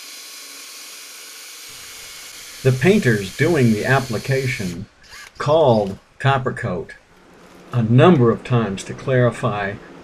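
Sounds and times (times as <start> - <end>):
drill mixing paddle whirring: 0.0 - 5.9.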